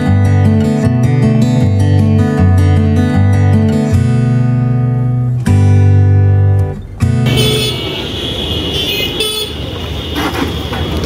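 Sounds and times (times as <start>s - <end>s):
street traffic: 0.0s - 11.0s
vehicle horn honking: 7.2s - 11.0s.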